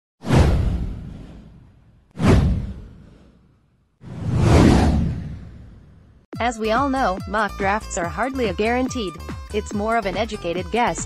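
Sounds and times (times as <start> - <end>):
whoosh with deep rumble: 0.2 - 6.3.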